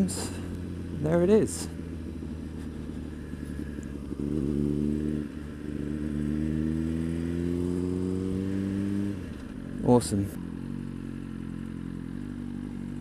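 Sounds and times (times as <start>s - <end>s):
motorcycle engine revving: 0.0s - 13.0s.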